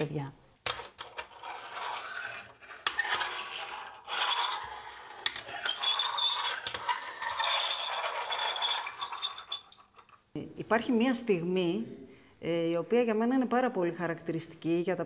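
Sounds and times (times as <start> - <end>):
objects scraping on tabletop: 1.0 - 10.2.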